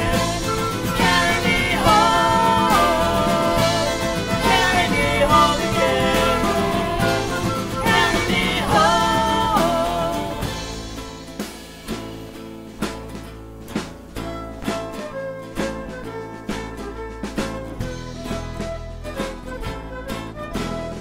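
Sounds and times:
sliding melody line: 0.0 - 11.3
drums: 0.0 - 21.0
guitar: 0.0 - 21.0.

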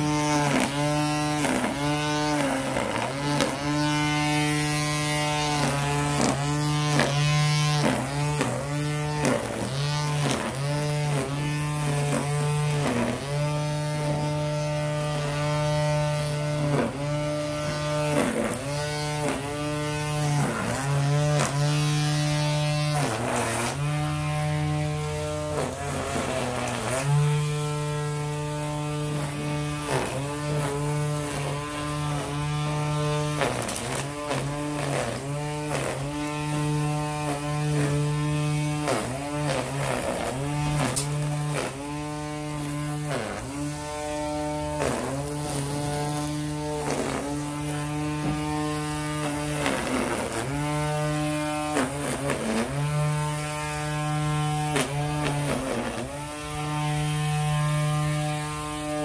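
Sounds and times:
string trimmer motor whining: 0.0 - 59.0.

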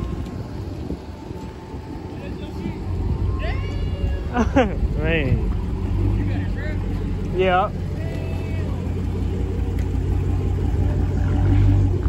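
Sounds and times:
car engine idling: 0.0 - 12.0
faint voices: 0.0 - 12.0.

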